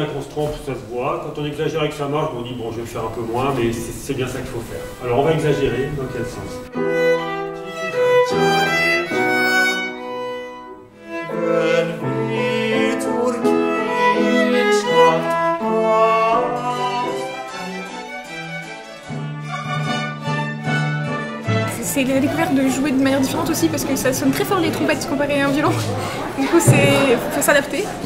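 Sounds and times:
baroque violin music: 0:05.0 - 0:27.8.

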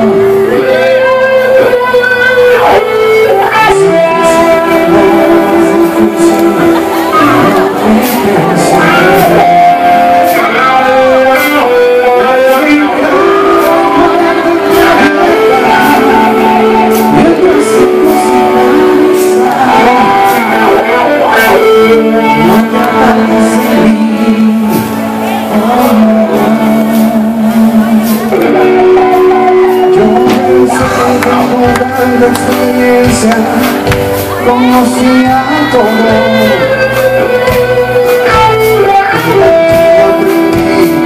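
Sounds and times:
live band guitar instrumental: 0:00.0 - 0:41.0.

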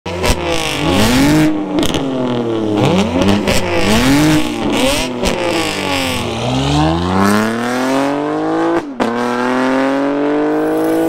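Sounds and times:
car engine revving: 0:00.1 - 0:11.0.

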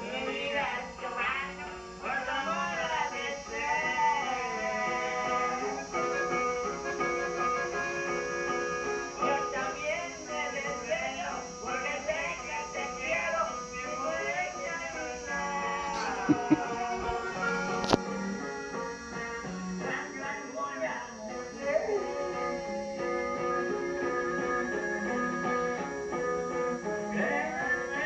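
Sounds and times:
acoustic guitar accompaniment: 0:00.0 - 0:28.0
button accordion melody: 0:04.8 - 0:09.2, 0:15.8 - 0:19.8.

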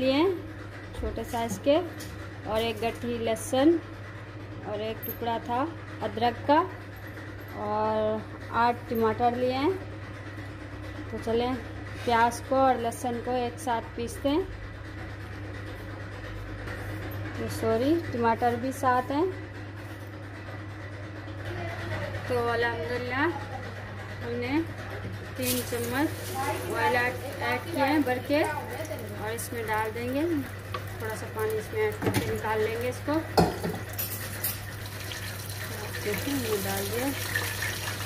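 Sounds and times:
utensils clattering on metal cookware: 0:25.3 - 0:38.0.

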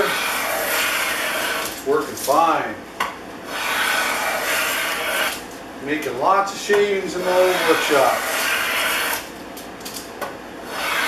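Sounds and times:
hand plane scraping wood: 0:00.0 - 0:01.8, 0:03.5 - 0:05.4, 0:06.8 - 0:09.3, 0:10.7 - 0:11.0.

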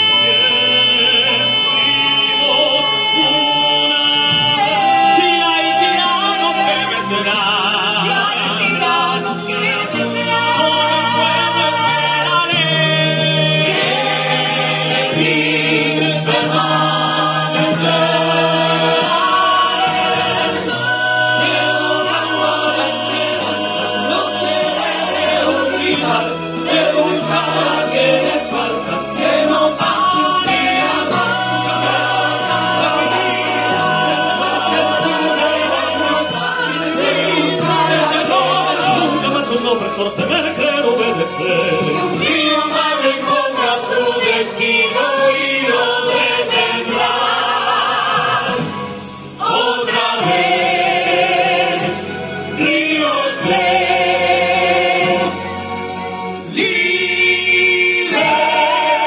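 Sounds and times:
mixed chorus singing chords: 0:00.0 - 0:59.0.

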